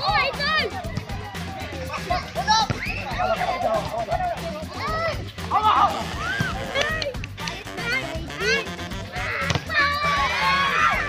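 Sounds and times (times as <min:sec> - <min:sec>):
steady low beat: 0:00.0 - 0:10.4
people calling out: 0:00.0 - 0:11.0.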